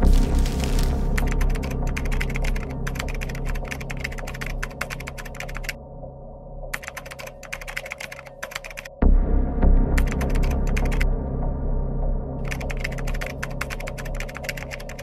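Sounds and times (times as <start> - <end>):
low music drone: 0.0 - 7.9, 9.0 - 15.0
rapid keyboard key clicks: 1.2 - 5.8, 6.7 - 9.0, 10.0 - 11.0, 12.4 - 15.0.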